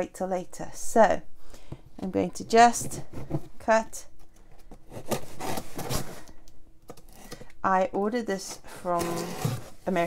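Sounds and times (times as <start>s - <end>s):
knife cutting tape and cardboard: 4.9s - 6.3s, 8.4s - 9.8s.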